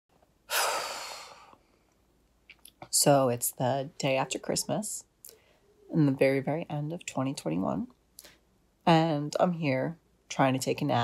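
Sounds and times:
woman sighing heavily: 0.5 - 1.6.

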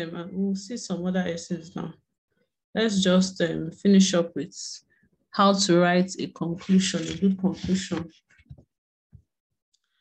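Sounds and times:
person speaking: 5.4 - 8.3.

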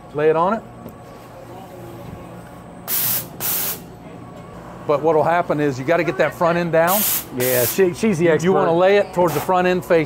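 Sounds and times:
conveyor humming: 0.0 - 10.0
compressed air hissing blasts: 2.9 - 3.8, 6.9 - 7.8.

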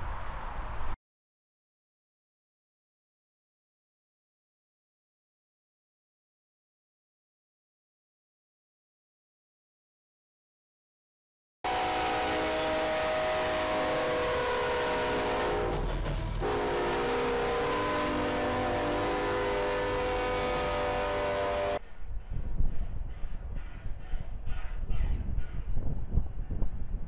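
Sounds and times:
locomotive air horn chord: 11.7 - 21.8.

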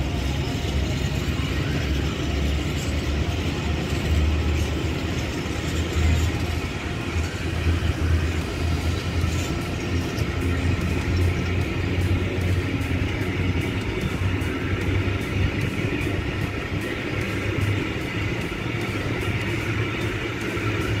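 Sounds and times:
low drone: 0.0 - 21.0
steel wheels rumbling on rail: 0.0 - 21.0.

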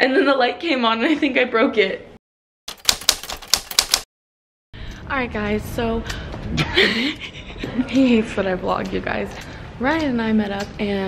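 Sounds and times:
typewriter key strikes: 2.7 - 4.0.

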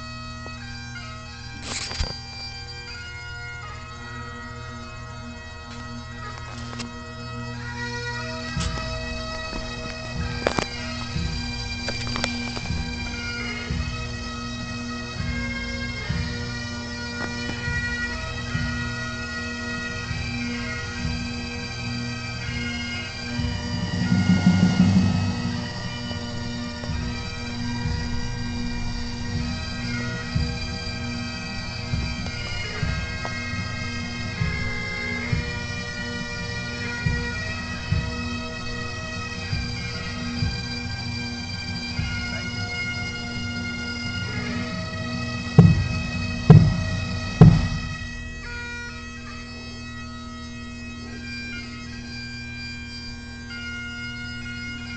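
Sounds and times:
bagpipe drone: 0.0 - 54.9
bagpipes playing: 0.0 - 54.9
low thumps on microphone: 23.4 - 27.2, 45.6 - 48.4.

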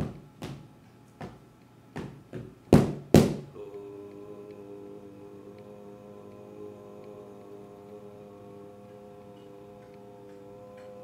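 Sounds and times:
steady ringing tone: 3.5 - 11.0.

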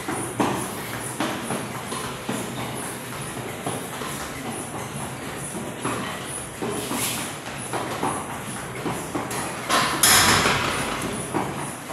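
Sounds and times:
sneakered feet on step platform: 0.0 - 11.9.

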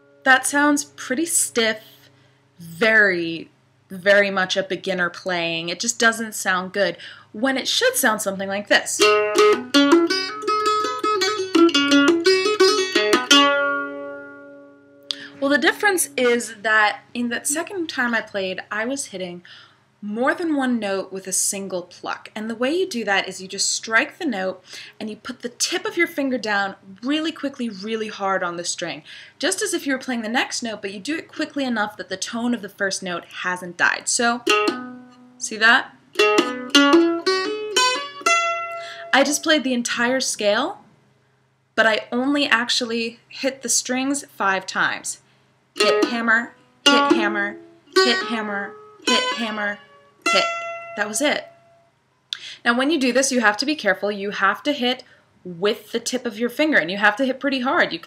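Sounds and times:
mandolin folk melody: 8.8 - 17.8, 34.4 - 39.6, 45.8 - 51.7.

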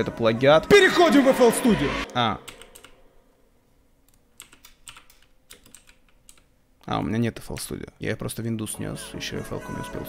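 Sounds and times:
computer keyboard keystrokes: 2.5 - 3.0, 4.1 - 6.5.

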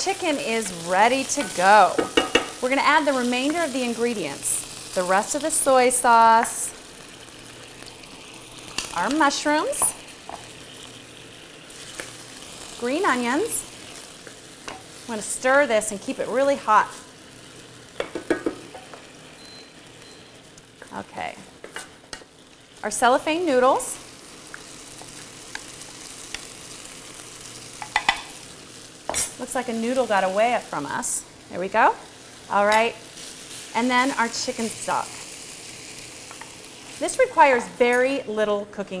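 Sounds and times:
food sizzling in hot oil: 0.0 - 38.9.

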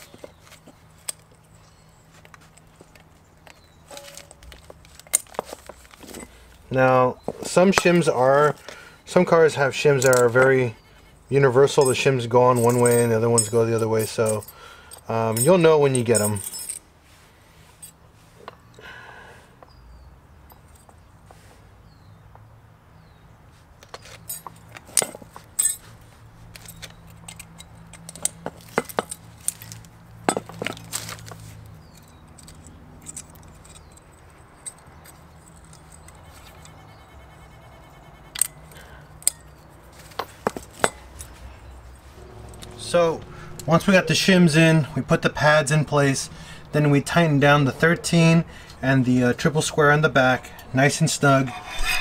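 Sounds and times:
small metal parts clinking: 0.1 - 6.6, 9.9 - 10.5, 11.7 - 16.9, 23.8 - 41.4
low steady hum: 40.8 - 52.0.

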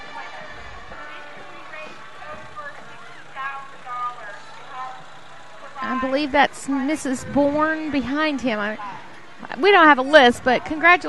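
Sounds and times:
faint voices: 0.0 - 11.0
truck engine humming: 0.0 - 11.0.

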